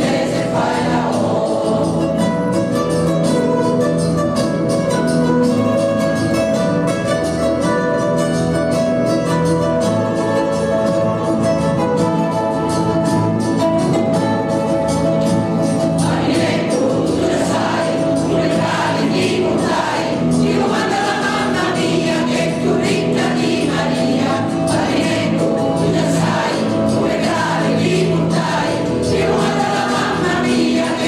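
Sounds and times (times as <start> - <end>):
mixed choir singing: 0.0 - 2.8, 15.9 - 31.0.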